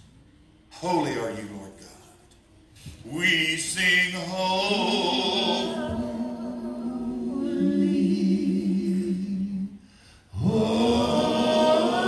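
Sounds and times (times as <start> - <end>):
unaccompanied worship singing: 3.0 - 12.0.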